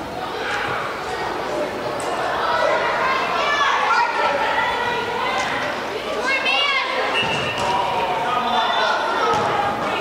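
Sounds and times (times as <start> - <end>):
players and spectators calling out: 0.0 - 10.0.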